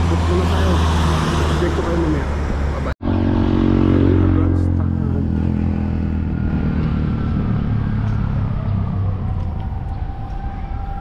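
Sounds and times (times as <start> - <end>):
vehicle engine passing: 0.0 - 10.8.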